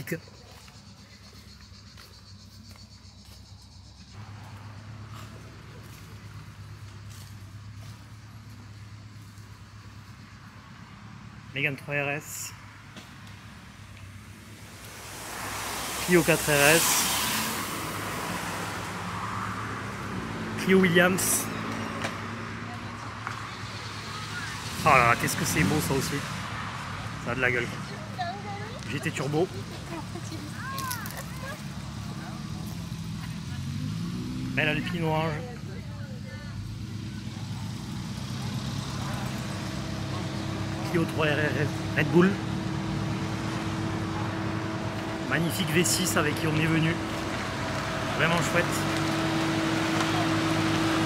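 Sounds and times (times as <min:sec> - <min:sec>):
outdoor background hiss: 0:06.0 - 0:22.4
car engine idling: 0:34.6 - 0:51.0.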